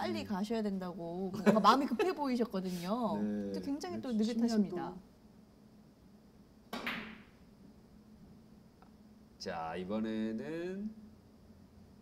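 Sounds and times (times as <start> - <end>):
faint room hum: 0.0 - 12.0
cue striking billiard ball: 6.7 - 7.4.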